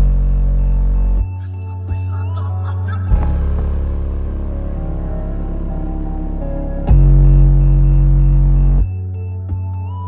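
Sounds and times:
heavy sustained bass note: 0:00.0 - 0:01.2, 0:03.1 - 0:09.2
loud electronic music: 0:00.0 - 0:10.0.

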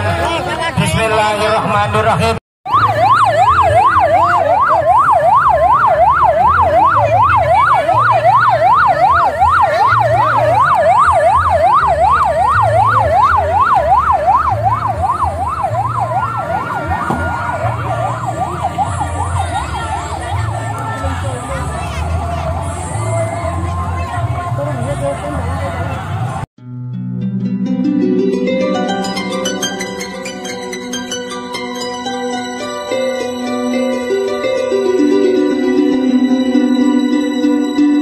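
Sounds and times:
electronic siren yelp: 0:02.7 - 0:24.1
voices: 0:16.0 - 0:26.4.

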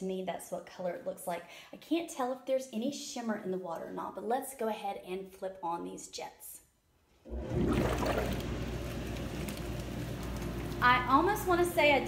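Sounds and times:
pump motor hum: 0:07.3 - 0:12.0
churning rushing water: 0:07.4 - 0:08.5.

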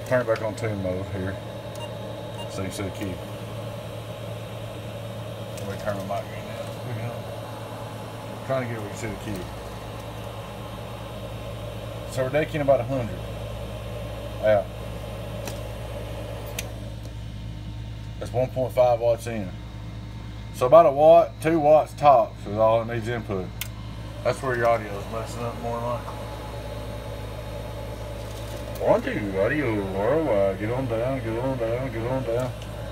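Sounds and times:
low electrical hum: 0:00.0 - 0:32.9
radio equipment hiss: 0:28.0 - 0:32.9.

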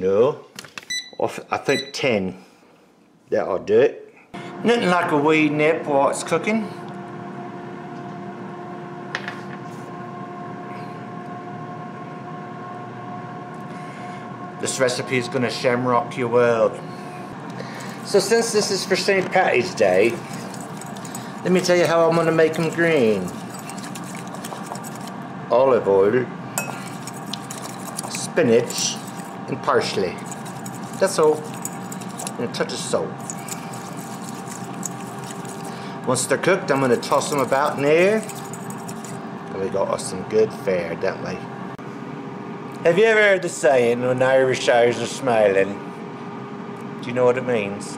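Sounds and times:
air fryer fan hum: 0:04.4 - 0:47.9
fork clinking against glass bowl: 0:19.9 - 0:25.1, 0:26.6 - 0:29.4, 0:30.0 - 0:32.4, 0:33.2 - 0:35.8, 0:36.7 - 0:39.2.

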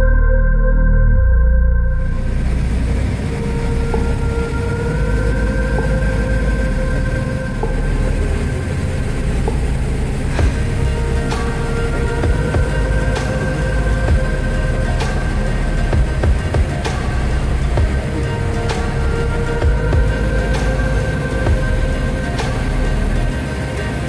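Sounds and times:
faint steady whine: 0:01.7 - 0:24.0.

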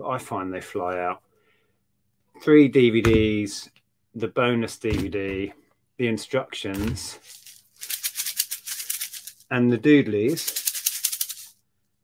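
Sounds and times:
shakers rattling: 0:07.1 - 0:09.5, 0:10.3 - 0:11.6.

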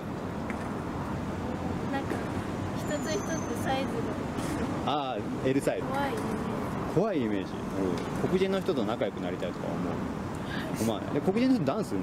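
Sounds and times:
distant road traffic hum: 0:00.0 - 0:12.0.

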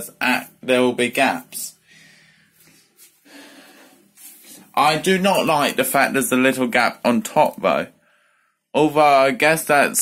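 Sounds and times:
person breathing: 0:01.8 - 0:04.7, 0:08.0 - 0:08.7.

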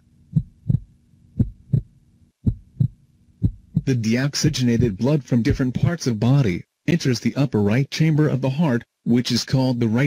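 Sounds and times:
faint low hum: 0:00.0 - 0:10.0
heartbeat: 0:00.3 - 0:04.0, 0:04.7 - 0:05.6.

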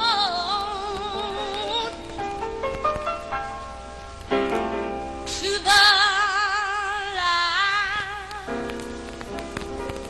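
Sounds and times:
person singing: 0:00.0 - 0:02.1, 0:05.3 - 0:08.7.

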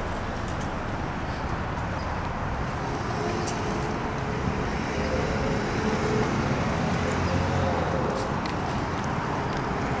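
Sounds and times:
cars passing on street: 0:00.0 - 0:10.0.

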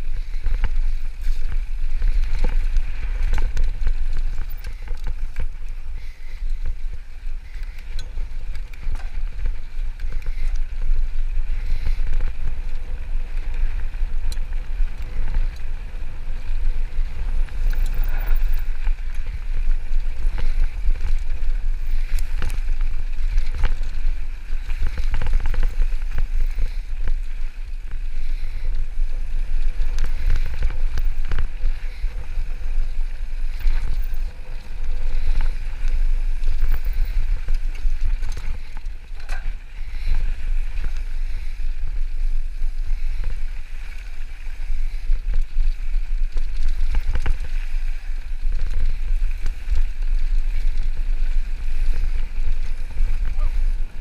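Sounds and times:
bike rattling and knocking: 0:00.0 - 0:54.0
wind rumbling on microphone: 0:00.0 - 0:54.0
tyres rolling on dirt: 0:00.1 - 0:54.0.

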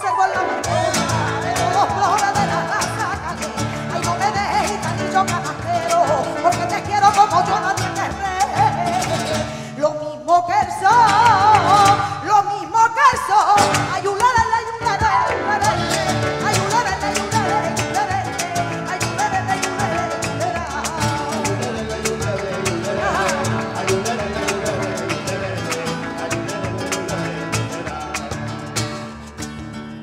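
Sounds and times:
woman singing with vibrato: 0:00.0 - 0:28.1
flamenco guitar: 0:00.0 - 0:30.0
cajon strikes: 0:00.6 - 0:09.7, 0:10.5 - 0:12.3, 0:13.0 - 0:30.0
handclaps: 0:00.7 - 0:09.6, 0:10.9 - 0:12.2, 0:15.6 - 0:29.7.

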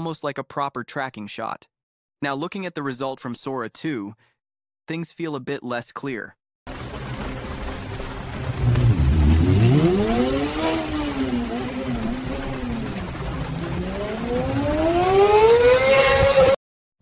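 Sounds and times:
low rumble: 0:06.8 - 0:15.2
motorcycle engine revving: 0:08.2 - 0:16.6.

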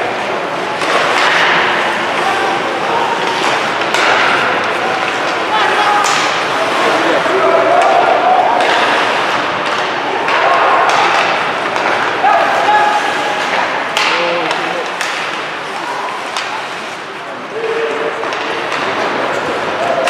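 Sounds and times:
hockey sticks and puck knocking: 0:00.4 - 0:20.0.

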